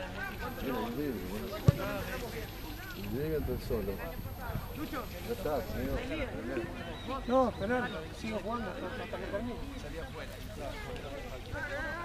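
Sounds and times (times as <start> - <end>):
men talking: 0.0 - 10.3
sharp thump: 1.6 - 2.0.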